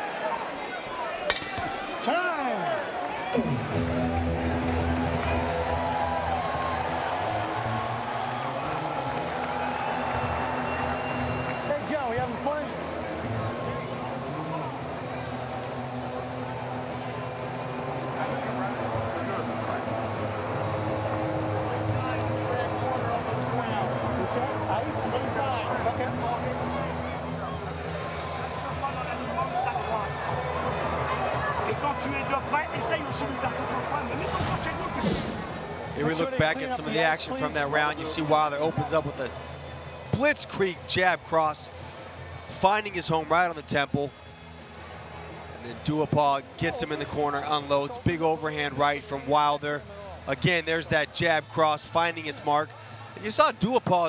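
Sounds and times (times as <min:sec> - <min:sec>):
crowd hubbub: 0:00.0 - 0:54.0.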